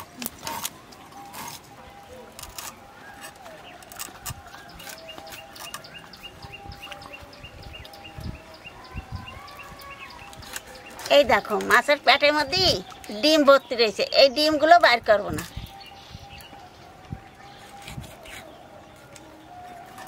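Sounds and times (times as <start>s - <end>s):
bird chirping: 0.0s - 20.0s
knife scraping fish scales: 2.3s - 5.9s, 17.6s - 18.6s.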